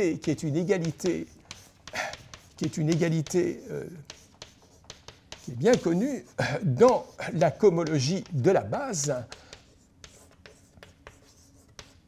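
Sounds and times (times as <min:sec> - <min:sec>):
chalk tapping and scratching: 0:00.0 - 0:12.0.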